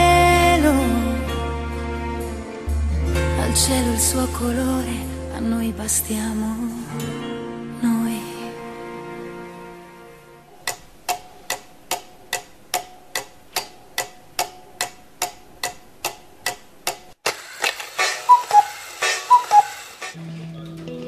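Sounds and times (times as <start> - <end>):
clock ticking: 10.6 - 17.2, 17.9 - 20.2
short chirps: 18.2 - 19.8.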